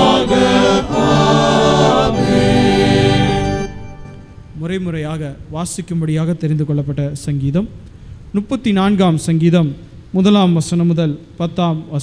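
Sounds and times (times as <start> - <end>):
men's choir singing: 0.0 - 4.2.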